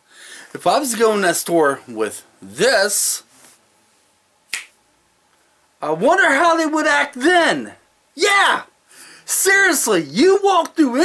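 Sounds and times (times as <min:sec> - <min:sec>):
sharp snap: 0:04.5 - 0:04.8
man's voice: 0:05.8 - 0:08.7.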